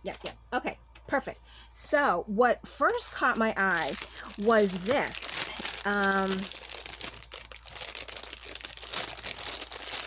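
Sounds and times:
plastic wrapping crinkling: 2.8 - 10.0.

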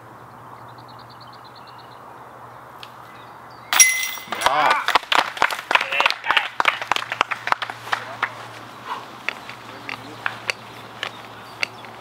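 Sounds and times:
disc hitting metal chains: 3.8 - 4.4.

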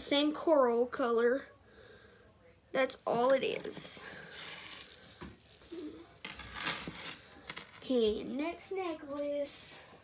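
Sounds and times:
jewelry rattling: 4.3 - 7.8.

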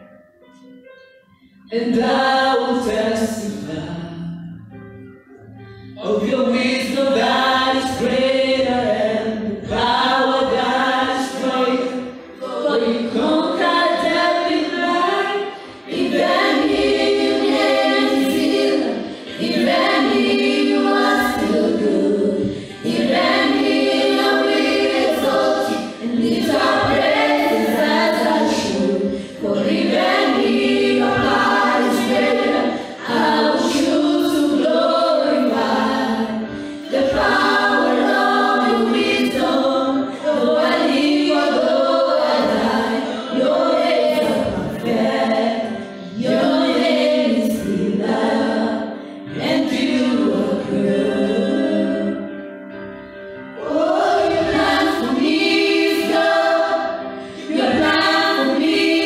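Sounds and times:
group singing gospel song: 1.7 - 4.6, 6.0 - 52.4, 53.6 - 59.0.

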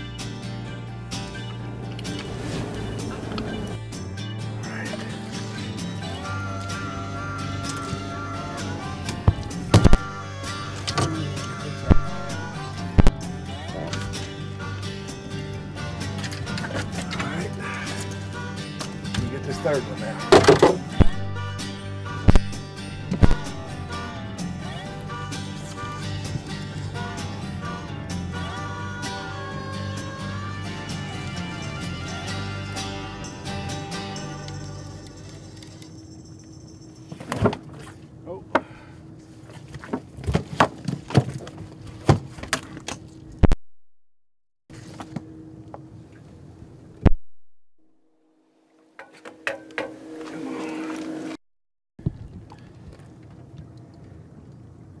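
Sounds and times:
background music: 0.0 - 35.8
fish flopping on boat deck: 37.1 - 43.4.

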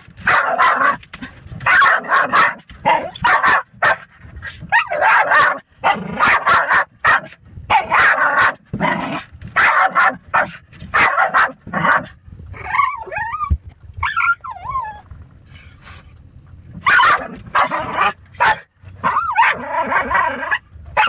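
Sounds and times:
puppy barking: 0.2 - 1.0, 1.6 - 4.1, 4.7 - 9.0, 9.6 - 12.1, 16.8 - 21.0
puppy whining: 12.5 - 16.1.

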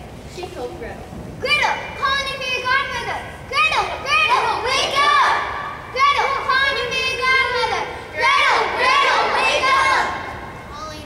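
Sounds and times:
children speaking: 1.4 - 11.0.

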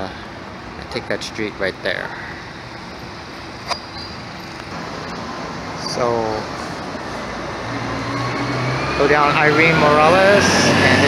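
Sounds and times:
bus engine droning: 0.0 - 11.0
traffic noise: 0.0 - 11.0
faint rising whine: 1.4 - 11.0.

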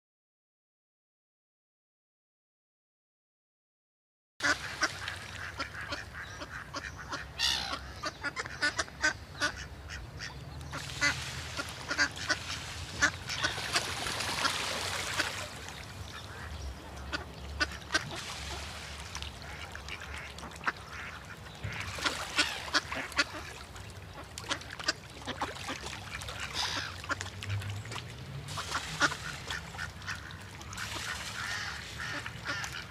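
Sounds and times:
ducks quacking: 4.4 - 27.8, 28.5 - 32.9.

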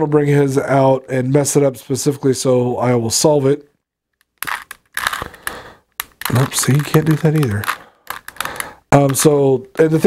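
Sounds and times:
plastic cube clicking and scraping: 4.2 - 10.0.

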